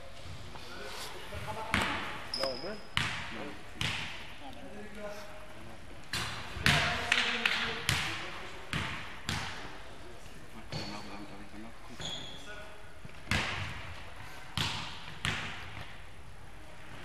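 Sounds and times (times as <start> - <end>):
short high squeaks: 2.3 - 3.0, 12.0 - 12.5.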